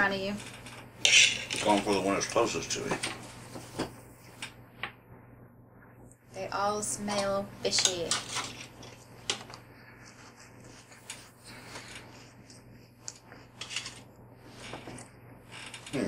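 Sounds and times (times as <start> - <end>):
faint steady hum: 0.0 - 16.0.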